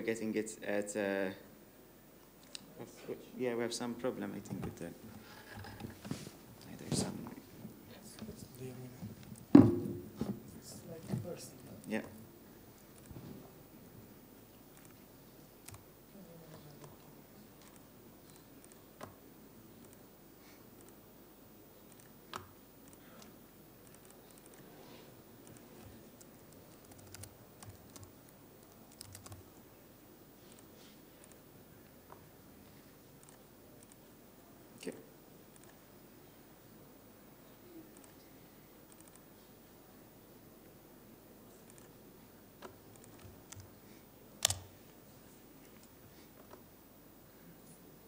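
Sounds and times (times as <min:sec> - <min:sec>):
typing on laptop keyboard: 0:26.8 - 0:28.1, 0:28.9 - 0:29.4
laptop key and mouse clicks: 0:44.4 - 0:44.7.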